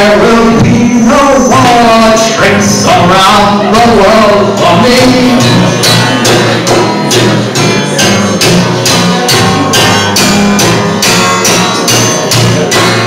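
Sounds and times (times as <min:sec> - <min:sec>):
live band playing: 0:00.0 - 0:13.0.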